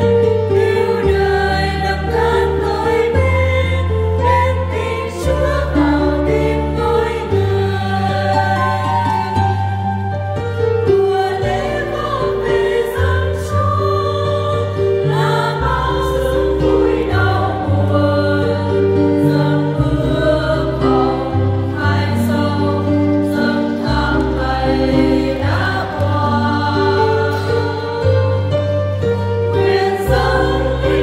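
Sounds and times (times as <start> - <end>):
choir singing a hymn: 0.0 - 31.0.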